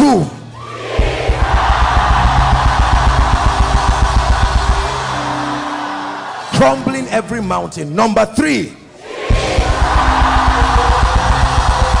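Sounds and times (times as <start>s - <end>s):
congregation shouting in unison: 0.5s - 6.9s, 8.9s - 12.0s
rapid drumming: 0.9s - 5.2s, 9.3s - 12.0s.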